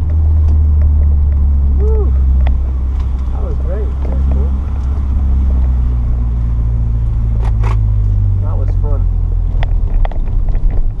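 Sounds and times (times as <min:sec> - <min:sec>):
car engine from inside cabin: 0:00.0 - 0:11.0
short voice sounds: 0:01.8 - 0:02.2.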